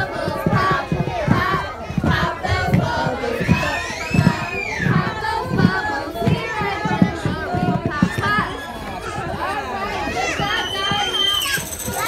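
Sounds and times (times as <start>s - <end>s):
group of people singing: 0.0s - 8.5s.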